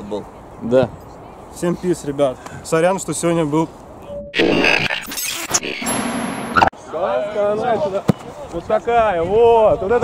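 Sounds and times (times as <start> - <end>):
brief tone: 4.0 - 6.7
stuttering static glitch bursts: 4.4 - 6.7.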